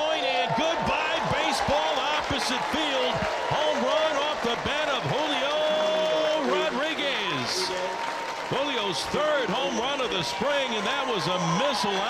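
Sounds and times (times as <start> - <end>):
spectators yelling and cheering: 0.0 - 12.0.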